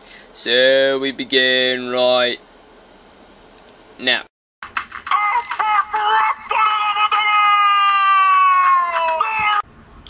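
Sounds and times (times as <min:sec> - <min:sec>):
person yelling long high note: 0:05.1 - 0:09.7.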